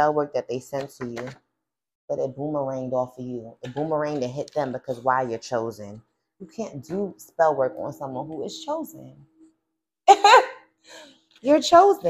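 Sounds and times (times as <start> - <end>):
woman laughing: 10.1 - 10.6.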